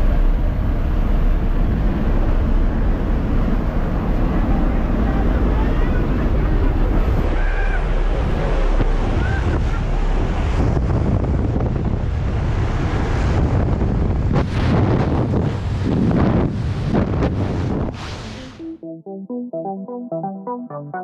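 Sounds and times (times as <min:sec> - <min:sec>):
wind buffeting microphone: 0:00.0 - 0:18.2
wind rushing through open door: 0:00.0 - 0:18.2
plane engine noise: 0:00.0 - 0:18.9.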